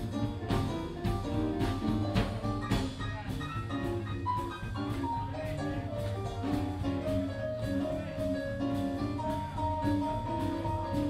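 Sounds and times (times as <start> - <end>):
bass line: 0.0 - 11.0
blues band playing: 0.0 - 11.0
drum kit: 0.0 - 11.0.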